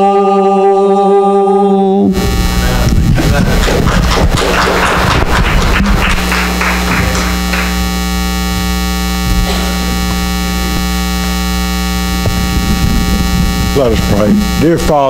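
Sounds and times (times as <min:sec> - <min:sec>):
man's voice: 0:00.8 - 0:03.9, 0:13.7 - 0:15.0
low electrical hum: 0:02.1 - 0:15.0
sustained synth pad chord: 0:05.8 - 0:15.0.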